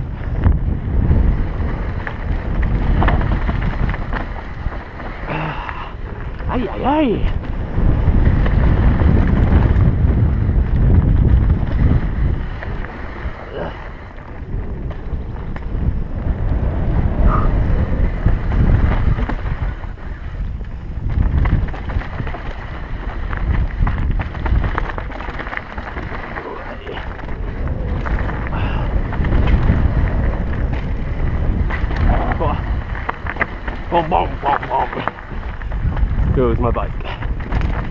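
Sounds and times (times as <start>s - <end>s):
bike rattling over rocky trail: 0.0s - 37.9s
wind buffeting microphone: 0.0s - 37.9s.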